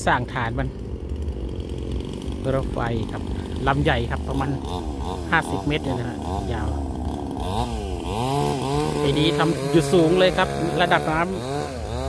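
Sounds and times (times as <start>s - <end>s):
small motor droning: 0.0s - 12.0s
man speaking: 2.4s - 6.8s, 8.9s - 11.4s.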